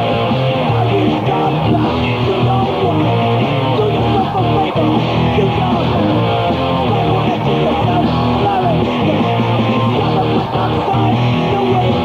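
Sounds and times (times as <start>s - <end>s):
distorted electric guitar riffing: 0.0s - 12.0s
thrashcore band playing live: 0.0s - 12.0s.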